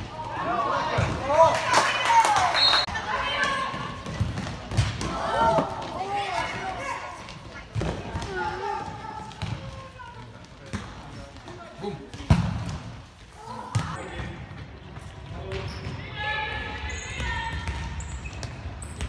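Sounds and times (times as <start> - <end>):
players' voices in sports hall: 0.0 - 19.0.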